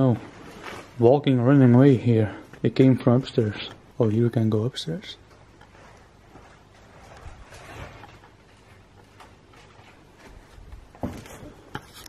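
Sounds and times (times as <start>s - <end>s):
footsteps on wooden stairs: 8.2s - 11.7s.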